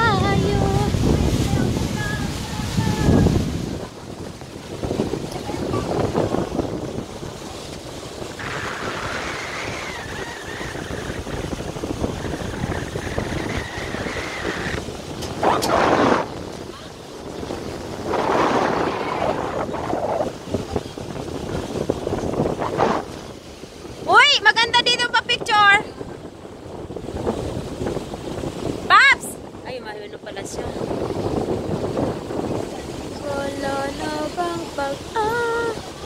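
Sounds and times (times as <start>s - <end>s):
motor boat running: 0.0s - 36.0s
water rushing past hull: 0.0s - 36.0s
wind buffeting microphone: 0.0s - 36.0s.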